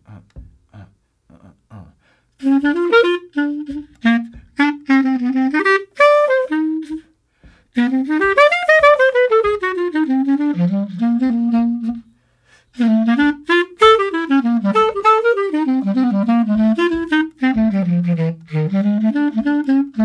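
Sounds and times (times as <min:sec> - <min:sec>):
jazz clarinet playing swing: 0:02.4 - 0:20.0.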